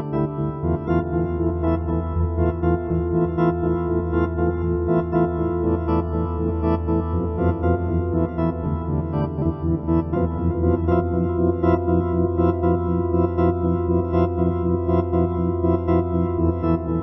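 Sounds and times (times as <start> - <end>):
pulsing electronic organ chords: 0.0 - 17.0.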